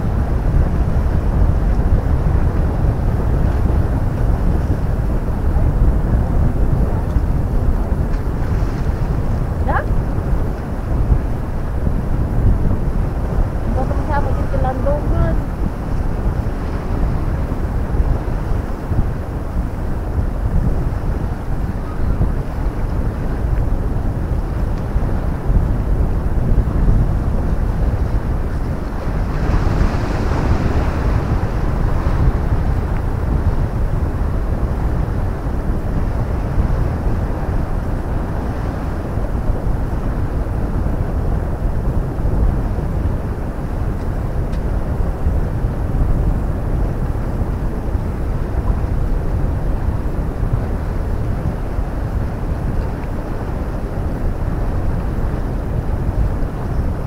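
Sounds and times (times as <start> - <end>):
wind buffeting microphone: 0.0 - 57.0
sea washing: 2.6 - 40.4.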